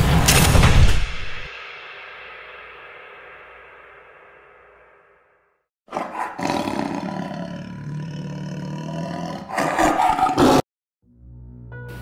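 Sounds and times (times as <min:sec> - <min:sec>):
animal-like roar: 0:05.9 - 0:10.6.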